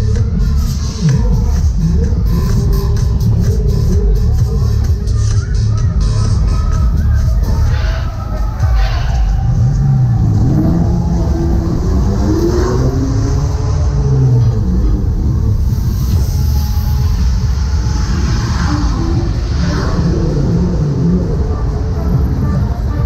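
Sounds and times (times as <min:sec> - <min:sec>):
fairground ride music: 0:00.0 - 0:23.0
fairground ride rumble: 0:00.0 - 0:23.0.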